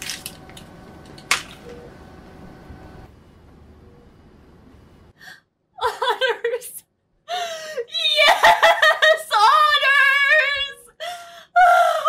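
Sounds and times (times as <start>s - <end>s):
low room hum: 0.0s - 12.0s
woman gasping and whimpering: 7.3s - 8.0s, 10.9s - 12.0s.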